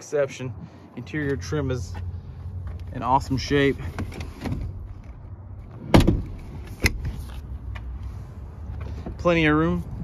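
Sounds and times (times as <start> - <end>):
loud thump: 5.8 - 6.4.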